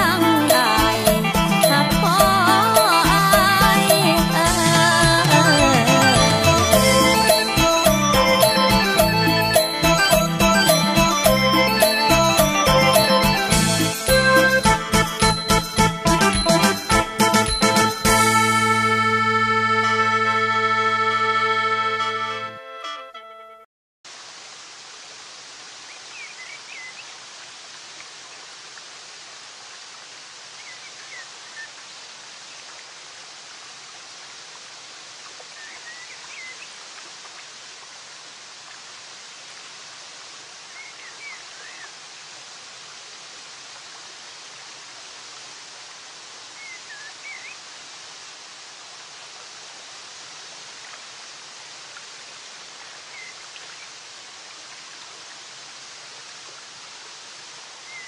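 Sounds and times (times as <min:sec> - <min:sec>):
flowing falling water: 0:00.0 - 0:19.2, 0:24.1 - 0:58.0.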